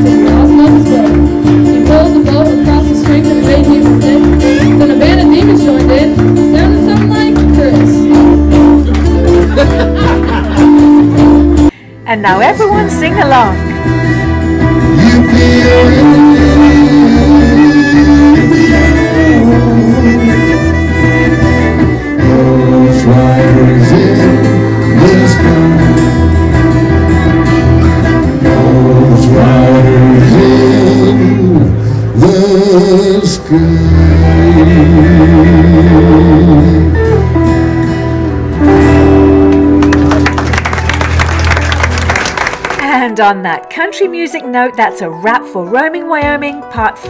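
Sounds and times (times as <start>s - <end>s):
bass guitar: 0.0s - 43.3s
electric and acoustic guitars: 0.0s - 47.0s
fiddle: 12.5s - 28.6s.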